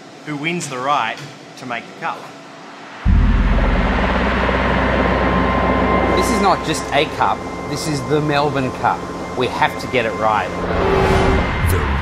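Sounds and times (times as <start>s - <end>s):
steady high tone: 2.9s - 11.9s
helicopter rotor rumble: 3.1s - 10.7s.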